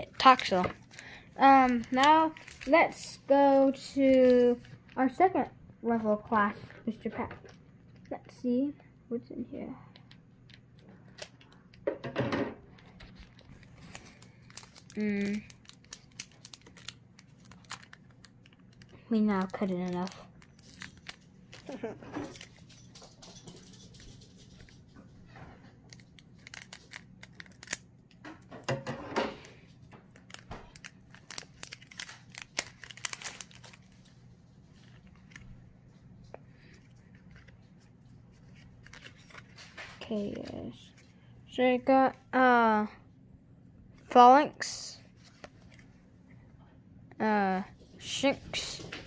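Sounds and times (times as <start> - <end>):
foil wrapper crinkling: 0.0 - 5.2, 12.8 - 23.2, 25.7 - 28.2, 29.4 - 36.0, 36.6 - 40.6
scissors snipping foil: 18.7 - 22.6, 25.9 - 27.8, 30.1 - 33.8.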